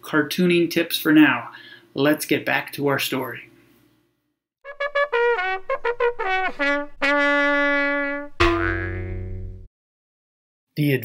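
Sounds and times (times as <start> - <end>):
held trumpet note: 4.6 - 9.7
brass final chord: 4.7 - 9.7.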